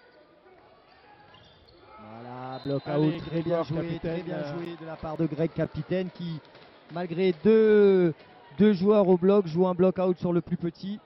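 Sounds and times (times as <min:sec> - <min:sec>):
crowd noise in sports hall: 0:00.0 - 0:11.0.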